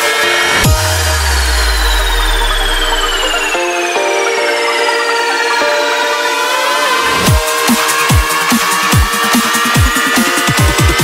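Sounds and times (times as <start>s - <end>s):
electronic music: 0.0s - 11.0s
deep bass note: 0.6s - 3.8s
high synth tone sliding down: 0.6s - 7.3s.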